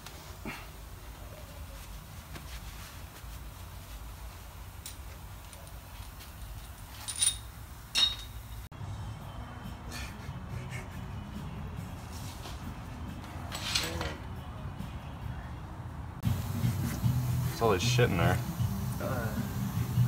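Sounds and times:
tools tapping on steel frame: 7.0 - 8.4
sharp metallic clinks: 7.0 - 8.7.

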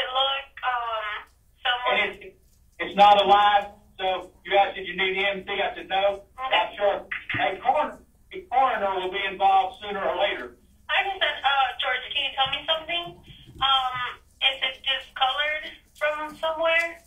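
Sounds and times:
speech over a telephone line: 0.0 - 17.0.

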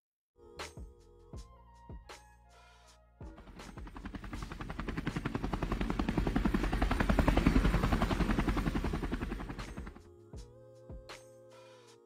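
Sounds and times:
helicopter rotor chopping: 3.3 - 10.1.

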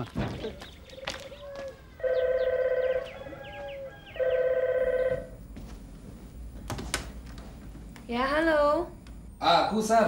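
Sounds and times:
telephone ringing: 2.0 - 3.2, 3.9 - 5.4.

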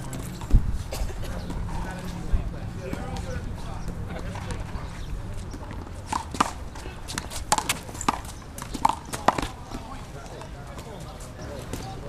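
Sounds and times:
wind rumble on microphone: 0.0 - 9.4
faint distant voices: 0.0 - 12.0.

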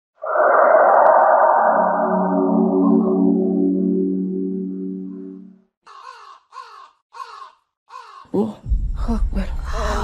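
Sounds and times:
crow cawing: 5.8 - 8.3.

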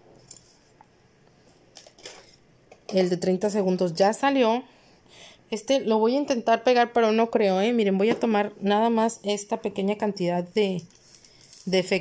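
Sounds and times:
woman speaking: 2.9 - 4.7, 5.5 - 11.0, 11.6 - 12.0.

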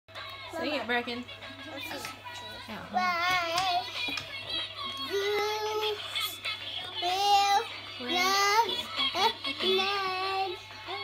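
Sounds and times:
toddler singing: 3.0 - 11.0.

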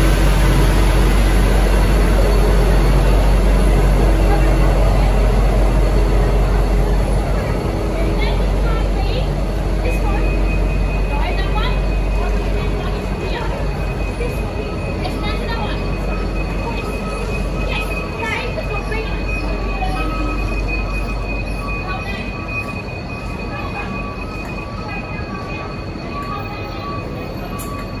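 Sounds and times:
train carriages rolling past: 0.0 - 28.0
high brake squeal: 9.9 - 28.0.

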